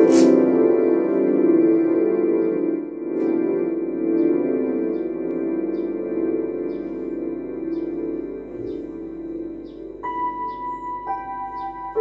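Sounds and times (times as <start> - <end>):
electronic keyboard chords: 0.0 - 12.0.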